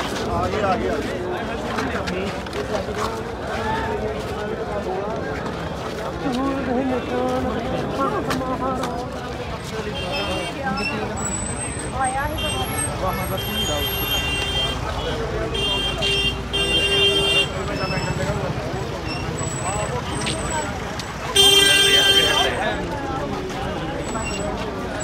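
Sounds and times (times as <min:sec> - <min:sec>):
crowd chatter: 0:00.0 - 0:25.0
vehicle horns honking: 0:10.0 - 0:10.6, 0:12.3 - 0:18.2, 0:21.3 - 0:22.6.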